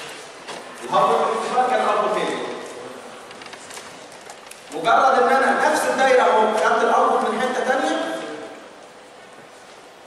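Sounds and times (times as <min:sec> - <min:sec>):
faint microphone hiss: 0:00.0 - 0:10.0.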